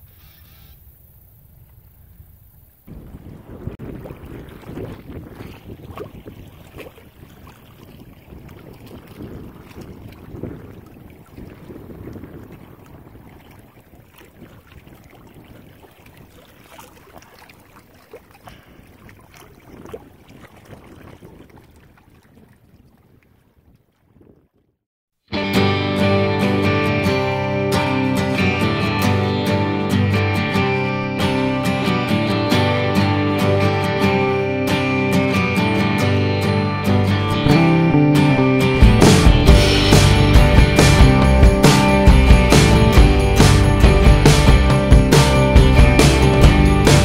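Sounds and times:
wind gusting across microphone: 0:01.9 - 0:16.7, 0:18.5 - 0:24.7
water lapping at shore: 0:02.4 - 0:24.7.

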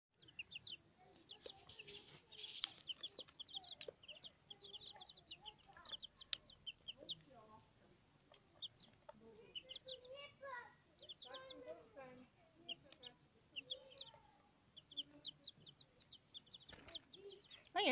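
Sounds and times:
chicks peeping: 0:00.2 - 0:17.9.

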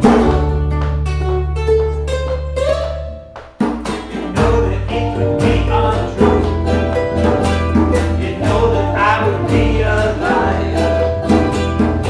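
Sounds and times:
bass line: 0:00.0 - 0:12.0
hand drum: 0:00.0 - 0:12.0
ukuleles strummed: 0:00.0 - 0:12.0
people singing: 0:03.9 - 0:12.0.

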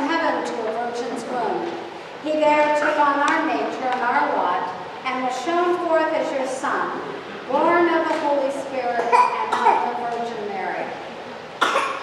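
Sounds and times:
sharp cough: 0:09.0 - 0:09.9, 0:11.6 - 0:12.0.

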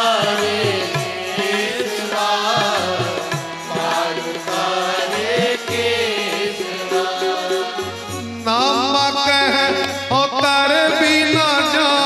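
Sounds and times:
congregation chanting in unison: 0:00.0 - 0:10.1
instrumental accompaniment: 0:00.0 - 0:12.0.

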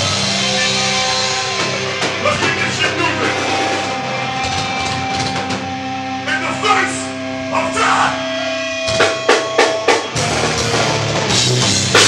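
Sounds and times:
band with distorted guitars: 0:00.0 - 0:12.0
vocalist shouting into microphone: 0:06.3 - 0:08.3.

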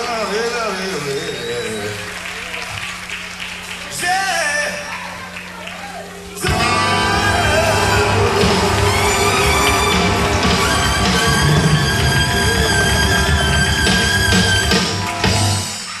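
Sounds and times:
sharp drum accents: 0:06.4 - 0:15.8
live band music: 0:06.4 - 0:16.0.

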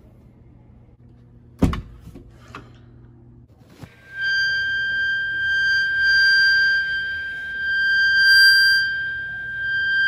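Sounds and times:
high-pitched electronic tone: 0:03.9 - 0:10.0.

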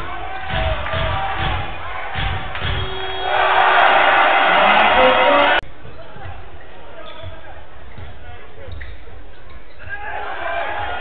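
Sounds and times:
arena crowd noise: 0:00.0 - 0:11.0.

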